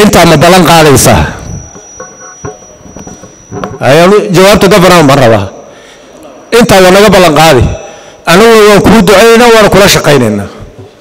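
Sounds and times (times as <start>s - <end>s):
man speaking into microphone: 0.0s - 1.6s, 3.7s - 5.6s, 6.2s - 10.7s
thin high whine: 0.0s - 9.5s.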